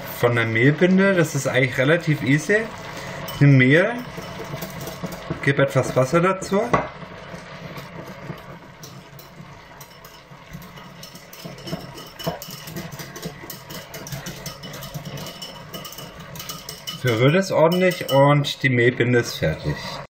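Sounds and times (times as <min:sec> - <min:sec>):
wire whisk scraping a bowl: 0:01.0 - 0:06.7, 0:07.3 - 0:18.6.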